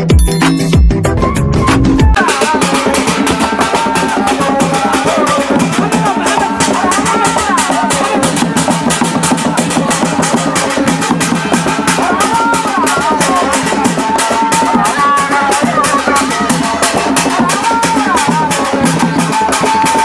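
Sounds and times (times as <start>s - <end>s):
drum-led dance music: 0.0s - 20.0s.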